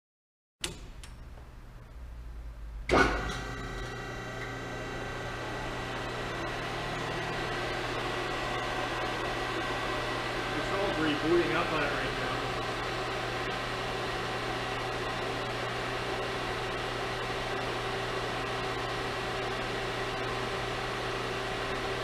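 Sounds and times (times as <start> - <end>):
hydraulic pump motor humming: 2.9 - 22.0.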